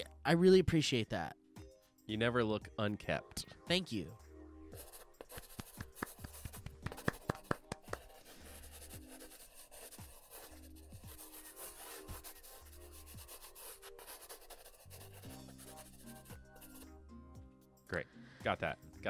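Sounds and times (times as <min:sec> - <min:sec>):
quiet background music: 0:00.0 - 0:19.0
hands rubbing: 0:04.8 - 0:10.6
hands clapping: 0:05.2 - 0:08.2.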